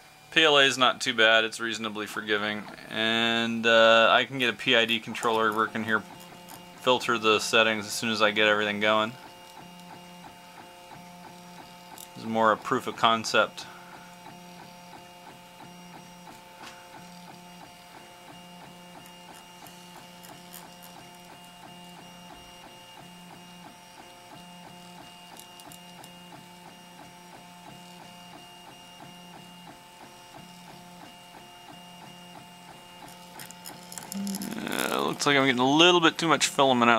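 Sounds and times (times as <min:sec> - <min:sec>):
stepper motors whining: 0:32.2 - 0:36.3
steady high tone: 0:34.1 - 0:35.2.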